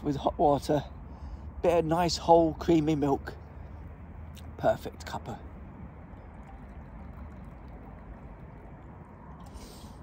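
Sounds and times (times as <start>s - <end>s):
tea pouring into metal cup: 6.0s - 10.0s
brief hiss: 9.4s - 10.0s.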